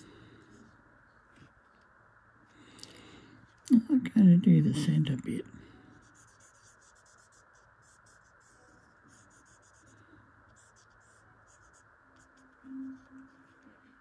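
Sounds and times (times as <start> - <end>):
felt-tip marker scratching on paper: 5.9 - 14.0.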